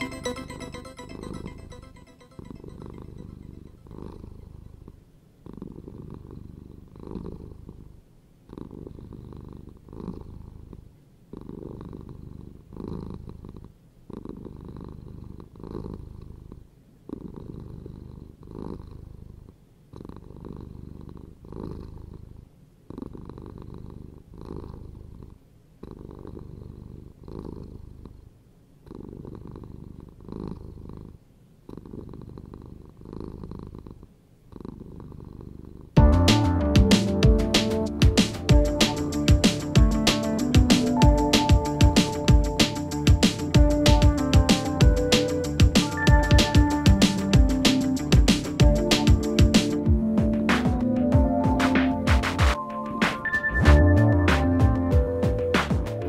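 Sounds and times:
cat purring: 2.2 - 52.1.

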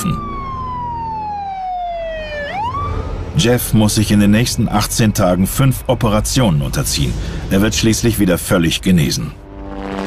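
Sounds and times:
emergency vehicle siren wailing: 0.0 - 3.9.

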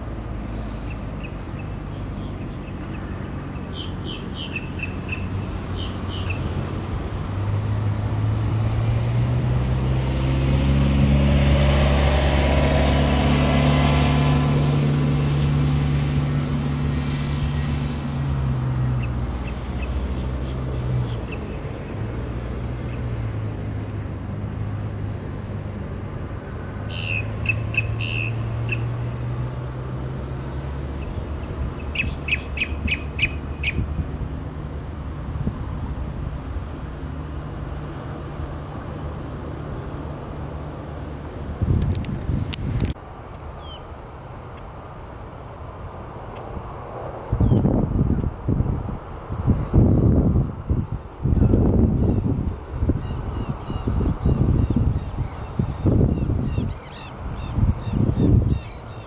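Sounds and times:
passing car: 0.0 - 59.0
grackle clicking calls: 0.6 - 6.5, 26.9 - 28.9, 31.0 - 33.9.

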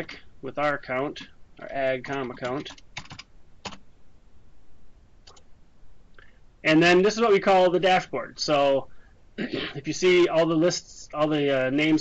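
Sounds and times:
computer keyboard keystrokes: 2.1 - 3.8.

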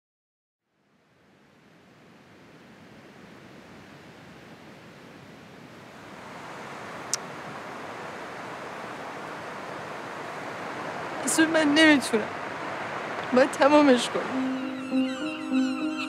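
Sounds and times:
wind: 0.6 - 16.0
sea surf: 2.1 - 16.0.

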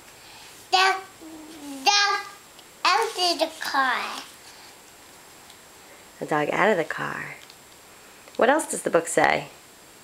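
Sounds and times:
young child's voice: 0.7 - 4.4.

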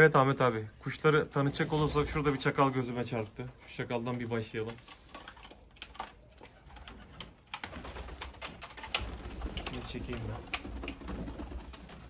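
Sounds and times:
pigeons clicking and tapping: 0.3 - 12.0.

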